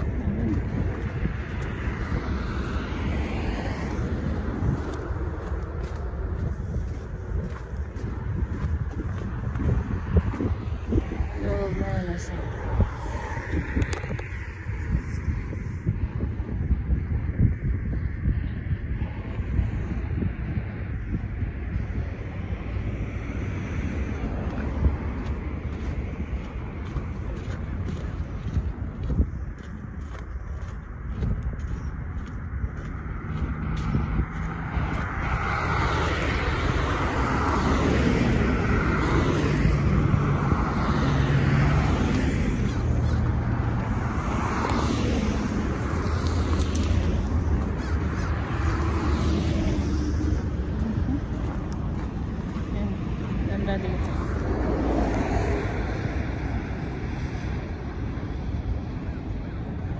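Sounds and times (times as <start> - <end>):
cars and trucks driving past: 0.0 - 59.9
distant traffic: 0.0 - 59.9
steady low rumble: 0.0 - 59.9
wind on microphone: 0.0 - 59.9.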